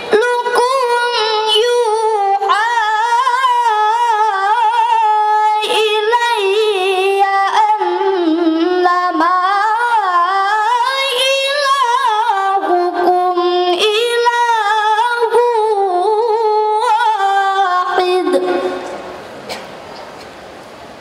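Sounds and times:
boy reciting melodically: 0.0s - 19.1s.

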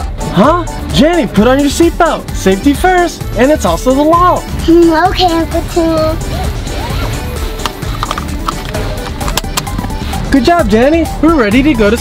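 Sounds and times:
background music with steady beat: 0.0s - 12.0s
seatbelt clicks and rattles: 7.6s - 10.0s.

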